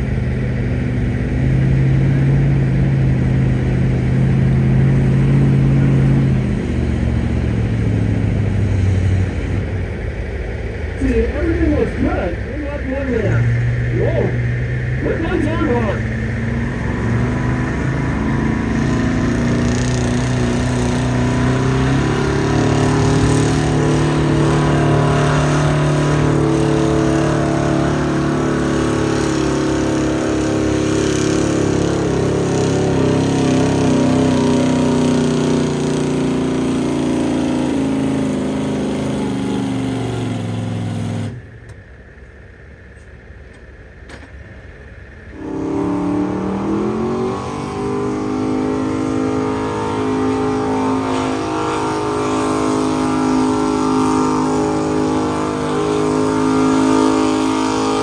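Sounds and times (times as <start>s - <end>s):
vehicle engine running hard: 0.0s - 58.0s.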